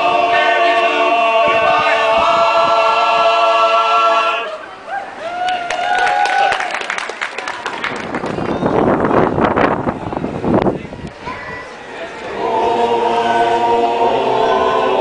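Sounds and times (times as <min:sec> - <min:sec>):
men's chorus singing harmony: 0:00.0 - 0:04.6, 0:12.2 - 0:15.0
people clapping: 0:05.2 - 0:09.3.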